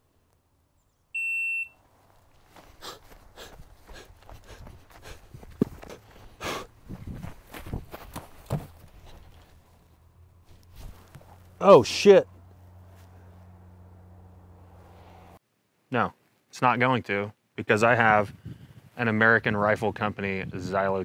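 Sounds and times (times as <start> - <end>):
shot timer beep: 1.2 - 1.8
footsteps: 1.8 - 11.6
rustling: 1.8 - 11.6.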